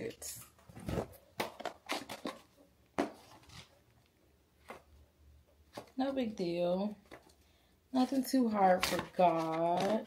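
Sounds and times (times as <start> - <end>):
plastic box being handled: 0.6 - 3.8, 8.0 - 10.0.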